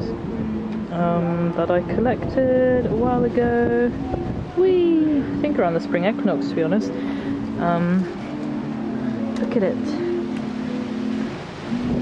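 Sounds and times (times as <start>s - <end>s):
steady low drone: 0.0s - 12.0s
wind buffeting microphone: 0.0s - 12.0s.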